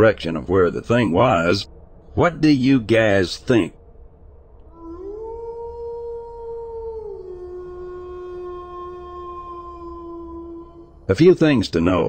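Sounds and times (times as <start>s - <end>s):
animal howl: 4.7s - 11.6s.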